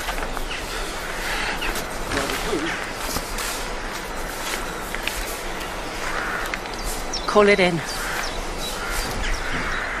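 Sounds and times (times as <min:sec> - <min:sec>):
birds calling: 0:00.0 - 0:10.0
crow cawing: 0:00.5 - 0:03.0, 0:05.6 - 0:07.0, 0:07.8 - 0:10.0.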